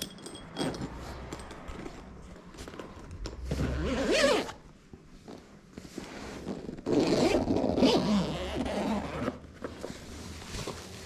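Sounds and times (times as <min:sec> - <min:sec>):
zipper being pulled: 0:03.4 - 0:04.6, 0:05.2 - 0:09.5.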